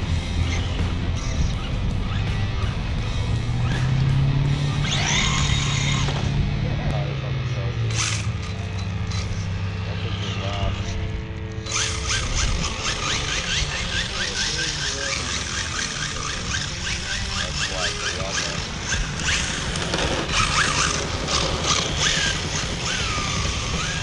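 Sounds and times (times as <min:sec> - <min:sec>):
rc car motor whining: 0:00.0 - 0:06.4, 0:07.8 - 0:24.0
tyre scrub on asphalt: 0:19.3 - 0:24.0.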